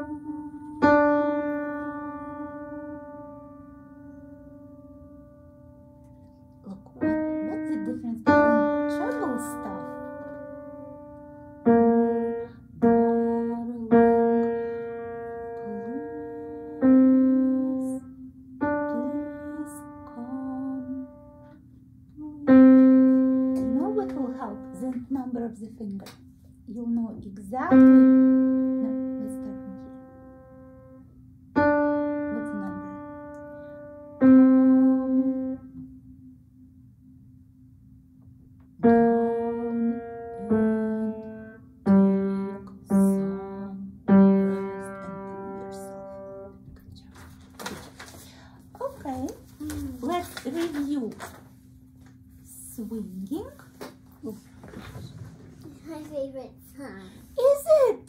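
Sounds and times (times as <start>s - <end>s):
piano notes played slowly: 0.0s - 25.4s, 27.6s - 36.1s, 38.7s - 47.2s.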